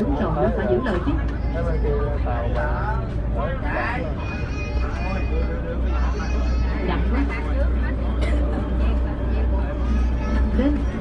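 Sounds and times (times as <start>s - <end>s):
ferry engines droning: 0.0s - 11.0s
people talking: 0.0s - 11.0s.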